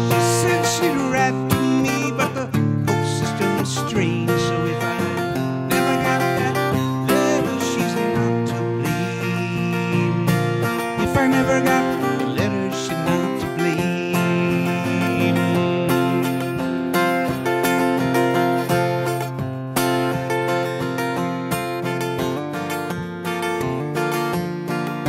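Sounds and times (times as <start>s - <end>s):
acoustic guitar picking notes: 0.0s - 25.0s
acoustic guitar strumming: 0.0s - 25.0s.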